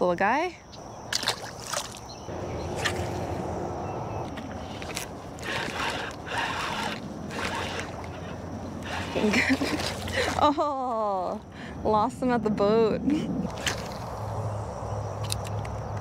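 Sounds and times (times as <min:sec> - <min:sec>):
water splashing: 0:01.1 - 0:03.6, 0:04.2 - 0:10.6
fishing reel whirring: 0:04.4 - 0:10.4
sharp reel clicks: 0:04.8 - 0:09.2.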